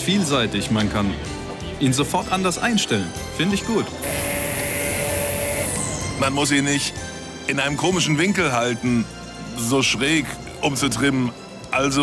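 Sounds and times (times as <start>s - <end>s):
string trimmer running: 4.0s - 5.9s.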